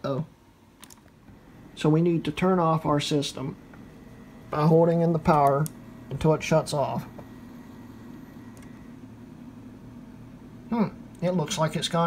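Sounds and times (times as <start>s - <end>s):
computer running hum: 0.0s - 12.0s.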